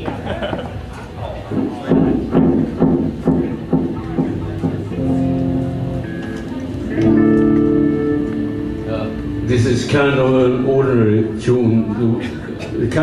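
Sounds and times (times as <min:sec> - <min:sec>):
guitar notes plucked: 0:02.5 - 0:12.0
guitar chord held: 0:04.9 - 0:11.2.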